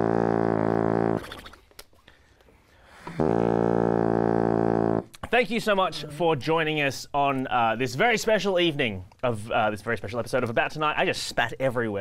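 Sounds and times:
bassoon long low note: 0:00.0 - 0:01.2, 0:03.2 - 0:05.1.

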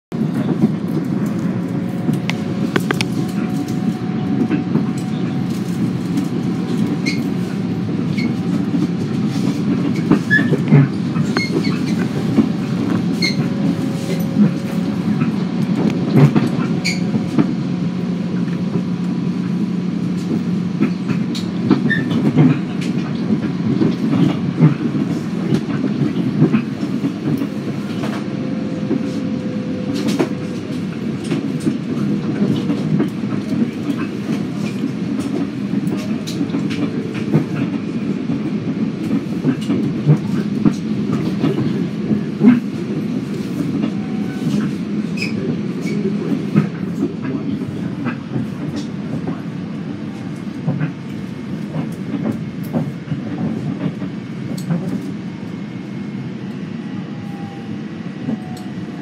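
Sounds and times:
rail clicks and clacks: 0:00.1 - 0:59.0
train wheels rumbling on rail: 0:00.1 - 0:59.0.

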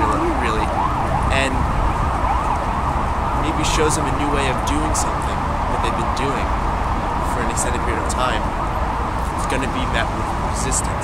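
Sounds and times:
emergency vehicle siren: 0:00.0 - 0:11.0
low rumble of traffic: 0:00.0 - 0:11.0.

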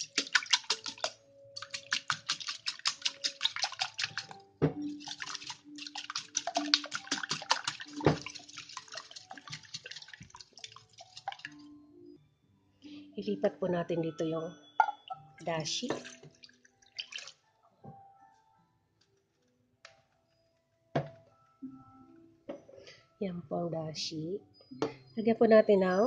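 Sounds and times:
whisk clicking against glass bowl: 0:00.0 - 0:10.1.

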